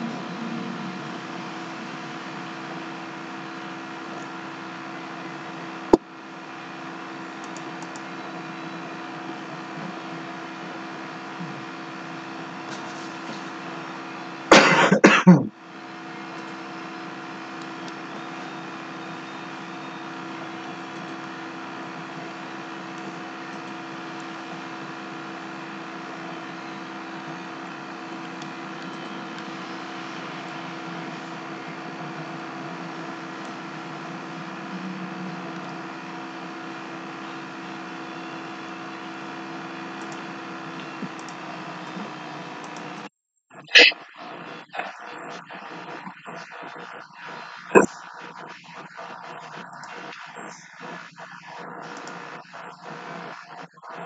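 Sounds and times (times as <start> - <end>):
steady hum with fixed tones: 0.0 - 54.0
person coughing: 14.5 - 15.5, 43.7 - 44.0.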